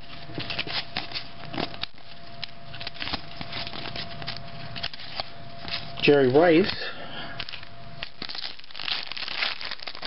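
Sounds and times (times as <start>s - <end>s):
wrapper crinkling and tearing: 0.0s - 6.0s, 7.4s - 10.0s.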